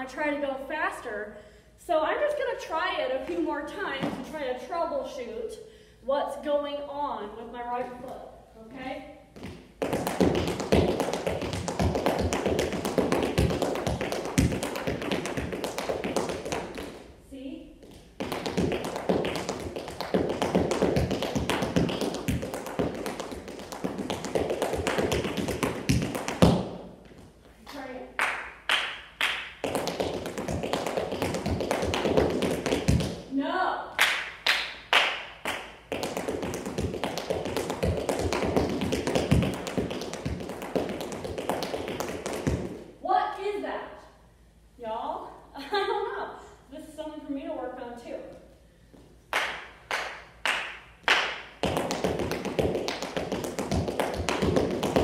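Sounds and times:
tap shoes striking hard floor: 0:03.2 - 0:04.4, 0:09.4 - 0:17.0, 0:17.8 - 0:27.3, 0:29.6 - 0:33.2, 0:35.9 - 0:42.8, 0:51.6 - 0:55.0.

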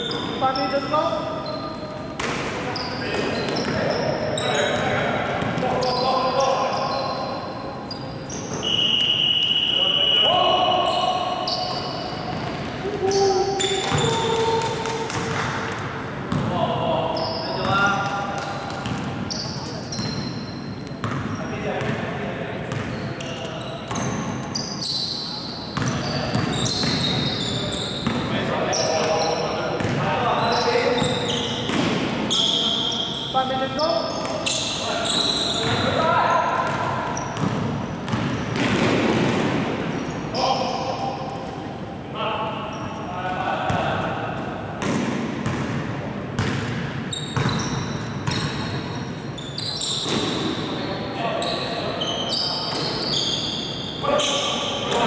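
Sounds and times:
shoes squeaking on floor: 0:00.0 - 0:15.5, 0:17.1 - 0:22.0, 0:22.7 - 0:38.8, 0:46.4 - 0:55.0
basketball dribbling in hall: 0:10.3 - 0:41.4, 0:44.7 - 0:50.8.

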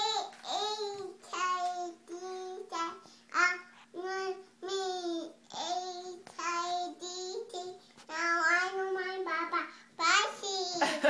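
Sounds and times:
toddler girl singing: 0:00.0 - 0:10.9.

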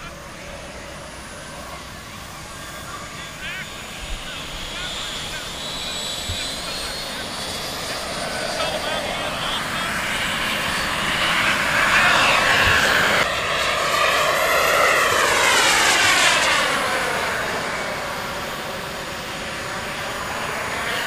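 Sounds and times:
jet passing whoosh: 0:00.0 - 0:21.0
model jet turbine roar: 0:00.0 - 0:21.0.

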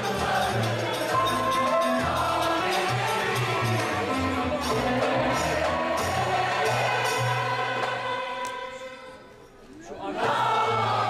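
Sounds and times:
mixed choir singing: 0:00.0 - 0:09.2, 0:09.8 - 0:11.0.

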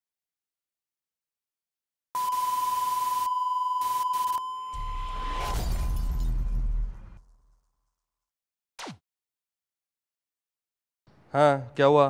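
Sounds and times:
steady high beep: 0:02.2 - 0:05.4.

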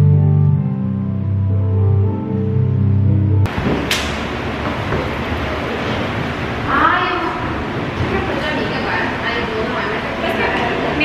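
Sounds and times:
rushing room noise: 0:01.2 - 0:11.0.

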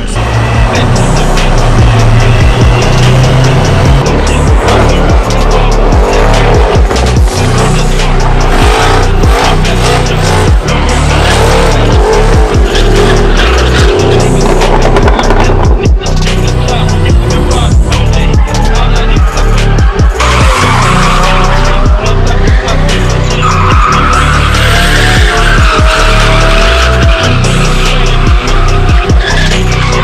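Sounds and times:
car engine revving high: 0:00.0 - 0:30.0
music: 0:00.0 - 0:30.0
tyres squealing: 0:00.0 - 0:30.0.

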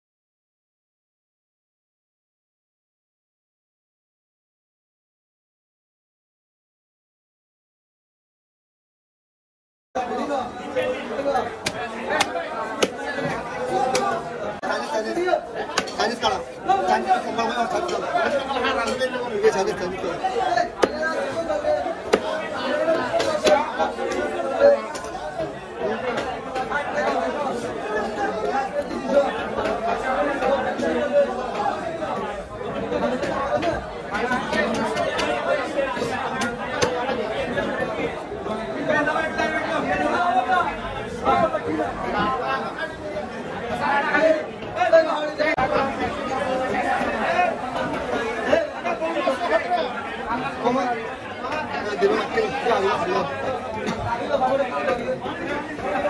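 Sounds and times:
crowd talking: 0:10.0 - 0:56.0.

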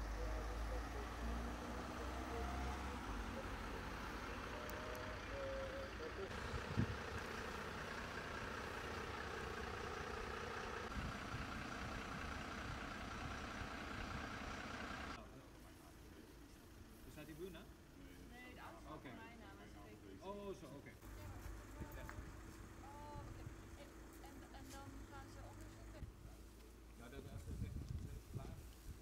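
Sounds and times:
car driving past: 0:00.0 - 0:10.9
fire engine idling: 0:00.0 - 0:27.7.

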